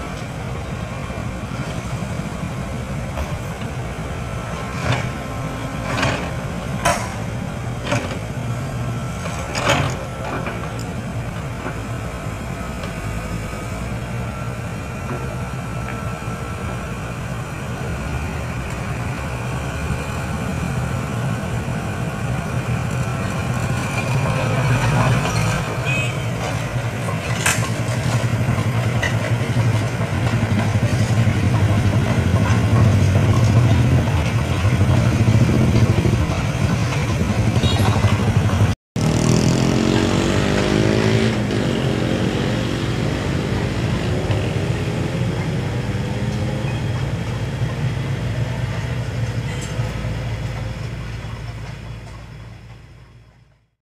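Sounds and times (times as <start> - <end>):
excavator diesel engine under load: 0.0 - 53.8
engine rising and falling in pitch: 31.4 - 48.4.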